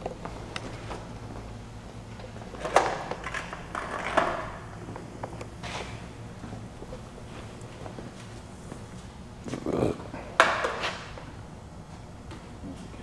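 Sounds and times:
low steady room hum: 0.0s - 13.0s.

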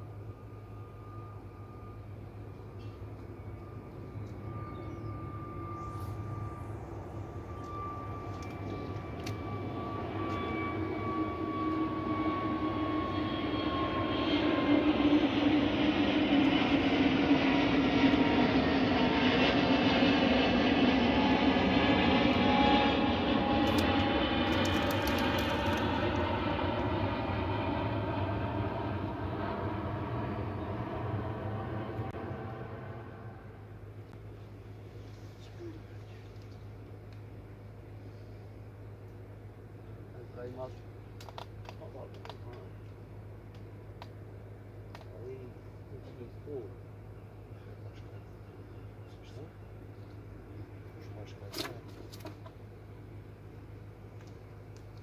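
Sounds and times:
aircraft passing over: 0.1s - 35.0s.

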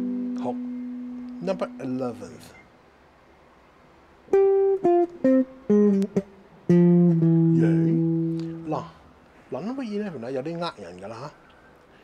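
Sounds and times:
electric guitar single notes: 0.0s - 2.5s, 4.3s - 8.8s.

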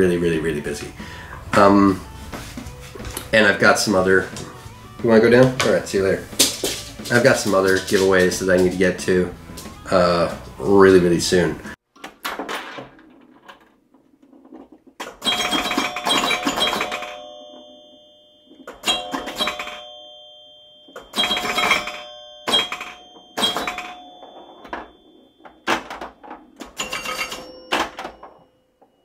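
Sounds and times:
bell-like chimes ringing: 0.0s - 10.4s, 15.2s - 29.0s.

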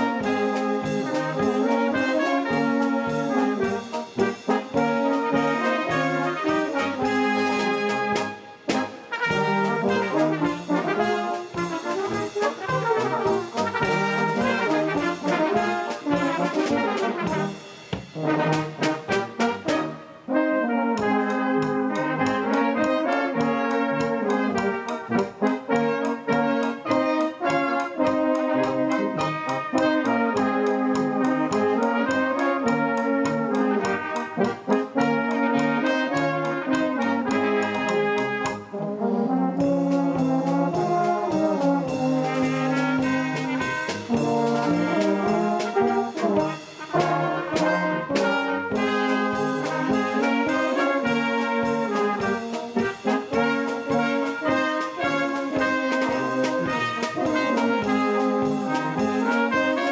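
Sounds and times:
steady drum beat: 0.0s - 39.0s, 39.6s - 59.9s
brass band playing: 0.0s - 59.9s.

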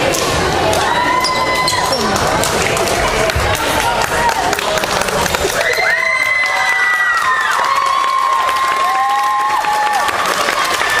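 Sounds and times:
players chattering and calling out: 0.0s - 5.6s.

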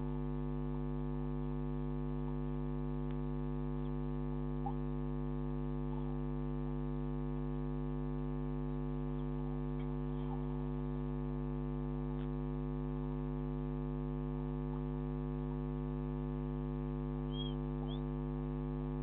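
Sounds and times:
electrical mains hum: 0.0s - 19.0s
faint chirps: 9.2s - 10.6s, 17.2s - 18.2s.

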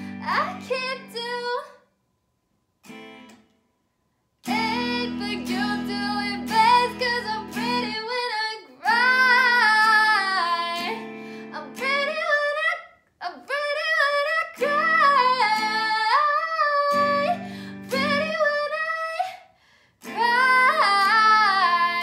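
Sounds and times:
strummed guitar chords: 0.0s - 1.2s, 2.8s - 3.5s, 4.4s - 12.6s, 14.1s - 18.9s, 20.0s - 22.0s
woman singing: 0.0s - 1.8s, 4.4s - 22.0s.

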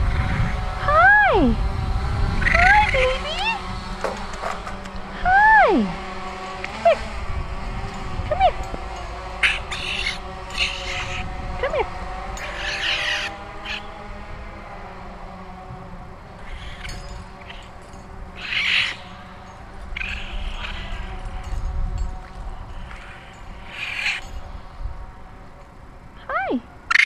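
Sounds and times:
low outdoor rumble: 0.0s - 27.0s
baby raccoon high cry: 9.4s - 11.3s, 12.4s - 13.9s, 16.4s - 17.7s, 18.4s - 19.1s, 20.0s - 21.3s.

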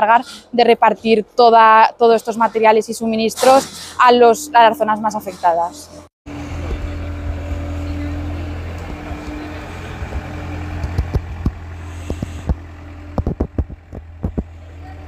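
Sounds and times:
forklift engine hum: 2.4s - 15.0s
sharp knocks and clicks: 10.8s - 14.5s.

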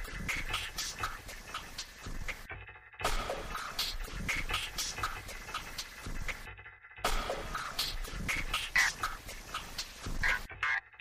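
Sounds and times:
experimental electronic music: 0.0s - 11.0s.

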